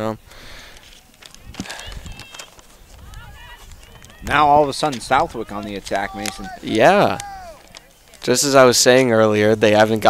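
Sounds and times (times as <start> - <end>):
distant high-pitched shouts: 1.6 - 8.2.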